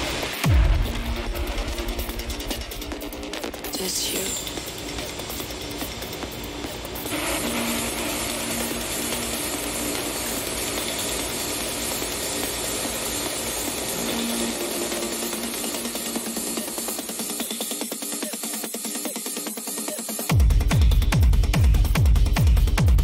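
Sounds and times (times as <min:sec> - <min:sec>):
steady low beat: 0:00.0 - 0:17.4, 0:20.3 - 0:23.0
electronic dance music: 0:00.0 - 0:23.0.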